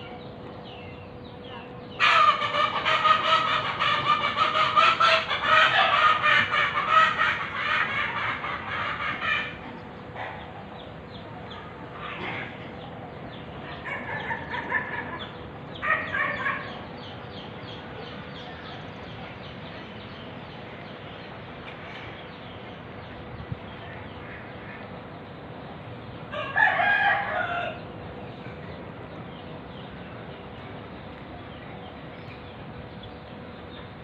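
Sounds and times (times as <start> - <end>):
chicken clucking: 2.0 - 10.5.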